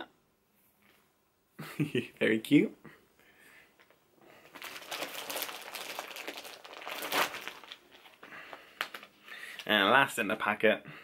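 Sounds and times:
packaging crinkling and rustling: 3.8s - 9.7s.

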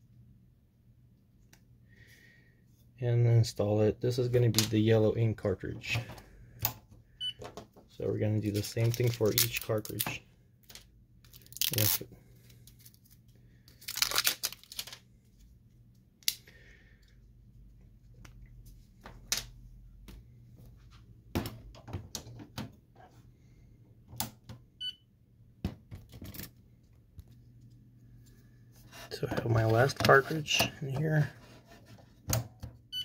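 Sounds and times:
plastic wrappers tearing: 8.5s - 10.2s, 11.3s - 12.1s, 12.7s - 15.0s.

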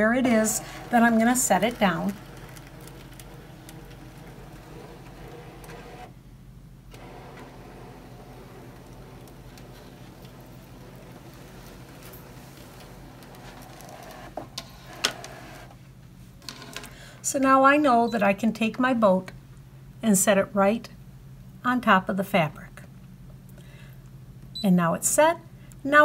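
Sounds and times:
cutting machine motor running: 0.0s - 6.1s, 6.9s - 14.4s.

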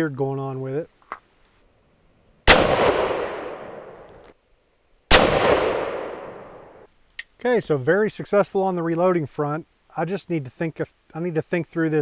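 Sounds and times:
rifle shots with echo: 2.5s - 4.2s, 5.1s - 6.8s.

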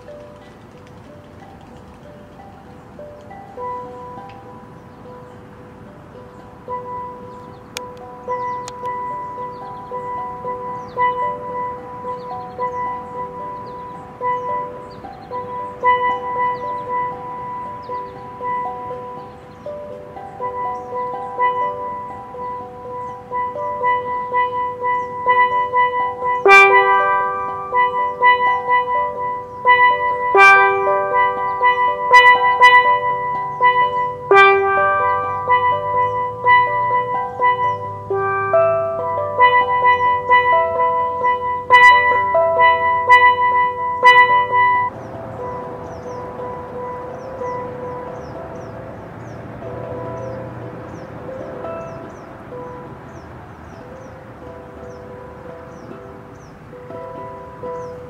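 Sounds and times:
hissy background: 0.0s - 58.0s
steel pan melody: 0.0s - 58.0s.

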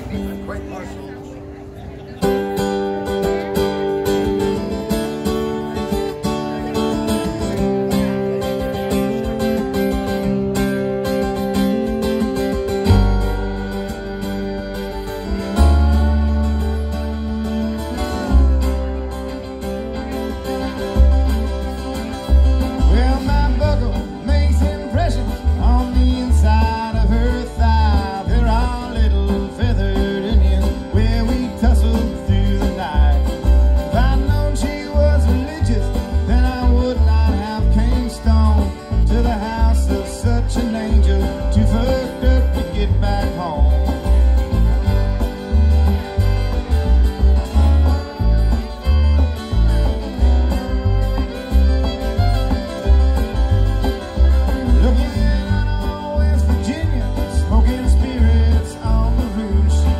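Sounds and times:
strummed acoustic guitars: 0.0s - 59.9s
upright bass plucking: 0.0s - 59.9s
bowed fiddle: 1.9s - 59.9s.

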